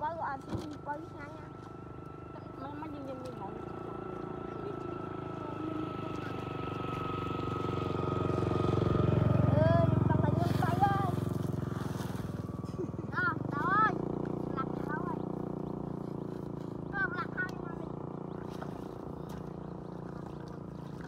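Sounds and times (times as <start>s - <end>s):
small motorcycle engine revving: 0.4s - 21.0s.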